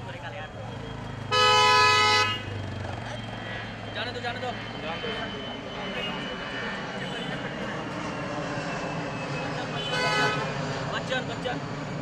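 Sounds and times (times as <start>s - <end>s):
car horn honking: 1.3s - 2.6s, 9.8s - 10.5s.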